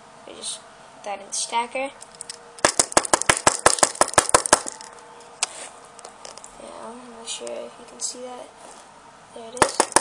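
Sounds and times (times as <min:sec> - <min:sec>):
hair stacker tapping on table: 0:09.6 - 0:10.0.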